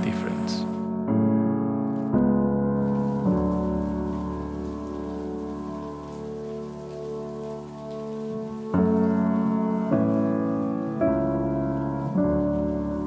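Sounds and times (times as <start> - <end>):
rain hissing: 0.0 - 0.9, 1.8 - 13.0
soft piano music: 0.0 - 13.0.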